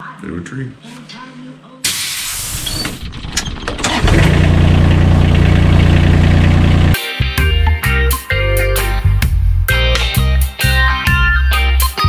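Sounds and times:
steady engine sound: 0:03.8 - 0:07.0
guitar music: 0:05.4 - 0:12.0.

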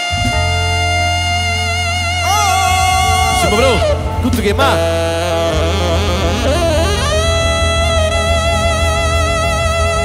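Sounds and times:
steady low beat: 0:00.0 - 0:10.0
wind instrument wavering note: 0:00.0 - 0:10.0.

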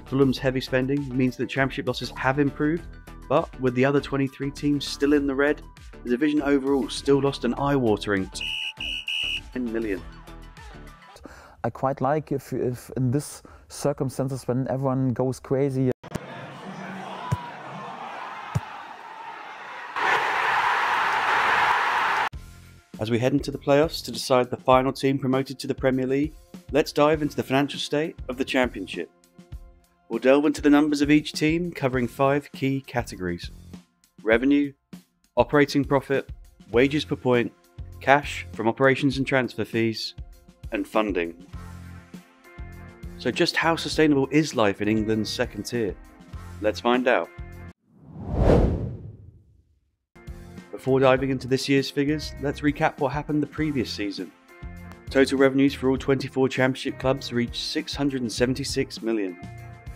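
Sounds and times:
transition whoosh: 0:48.0 - 0:49.5.

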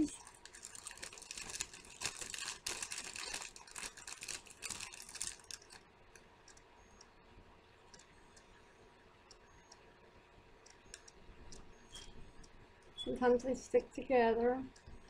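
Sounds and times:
plastic package crinkling: 0:00.0 - 0:05.8
faint ticks: 0:07.9 - 0:08.5, 0:09.2 - 0:09.9, 0:10.6 - 0:13.0.

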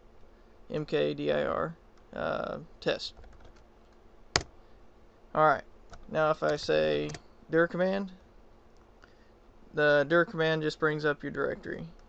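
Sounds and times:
computer keyboard typing: 0:03.2 - 0:03.6.

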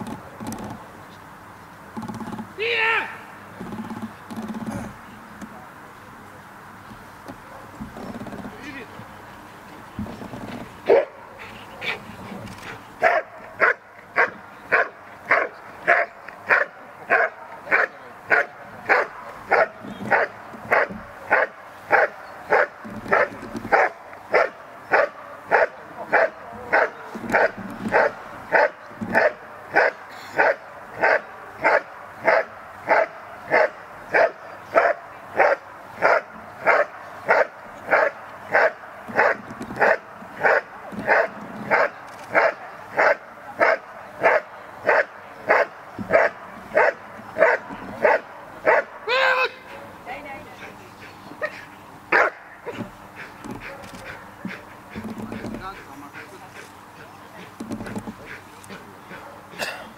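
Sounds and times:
dog barking: 0:10.9 - 0:12.0, 0:13.0 - 0:48.9, 0:51.4 - 0:52.8.

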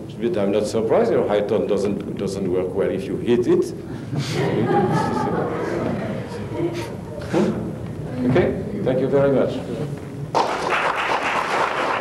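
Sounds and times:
audience applause: 0:10.3 - 0:12.0.

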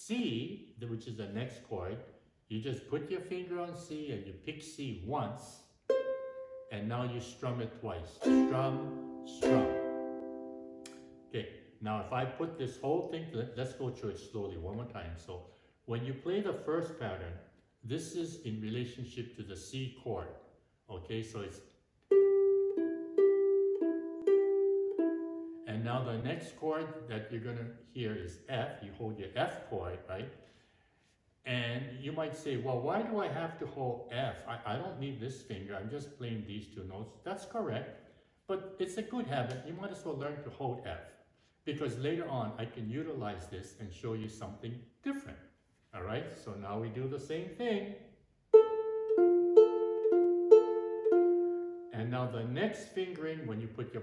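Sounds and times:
ukulele single notes: 0:05.9 - 0:06.7, 0:08.2 - 0:11.3, 0:22.1 - 0:25.6, 0:48.5 - 0:51.8.

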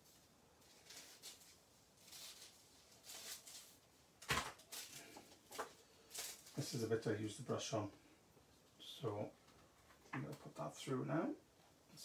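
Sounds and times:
paper rustling and scraping: 0:00.0 - 0:06.8.

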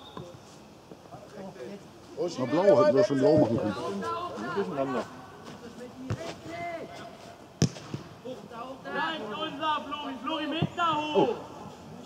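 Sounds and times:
football kicked on grass: 0:06.0 - 0:06.4, 0:07.6 - 0:08.1.

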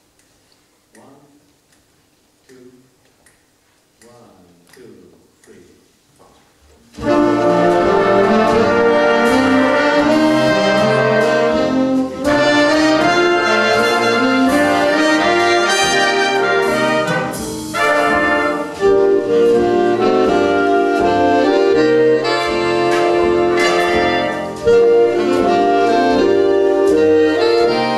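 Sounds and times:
jazz big band playing: 0:06.9 - 0:27.9.

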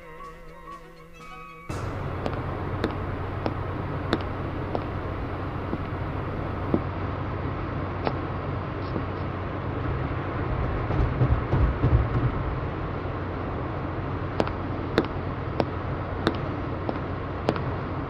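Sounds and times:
traffic hum: 0:00.0 - 0:18.0
vehicle passing: 0:01.7 - 0:08.7.

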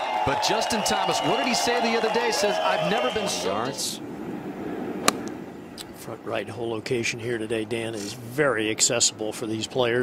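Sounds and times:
faint outdoor background noise: 0:00.0 - 0:10.0
golf club striking ball: 0:05.0 - 0:05.4.

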